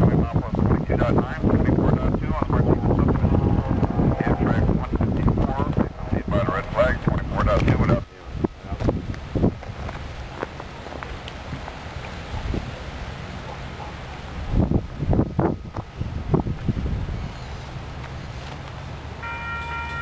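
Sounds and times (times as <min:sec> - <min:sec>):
wind on microphone: 0:00.0 - 0:18.6
distant locomotive horn: 0:02.8 - 0:04.8, 0:19.2 - 0:20.0.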